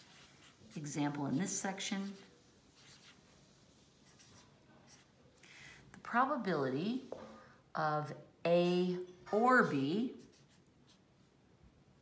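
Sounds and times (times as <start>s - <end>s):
pen scratching on paper: 0.0s - 1.0s, 1.9s - 3.2s, 4.0s - 5.1s, 10.2s - 11.0s.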